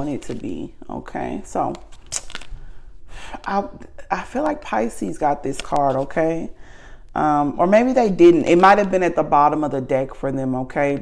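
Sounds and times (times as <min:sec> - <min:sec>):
card rustling and clicking: 0:00.0 - 0:00.7, 0:01.3 - 0:02.8, 0:05.3 - 0:06.3
woman speaking: 0:00.0 - 0:01.9, 0:03.3 - 0:11.0.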